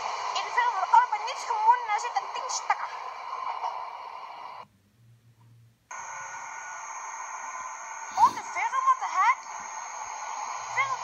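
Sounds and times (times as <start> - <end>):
trains in underground station: 0.0 - 4.7, 6.0 - 11.0
faint low hum: 0.0 - 11.0
high steady whine: 0.0 - 11.0.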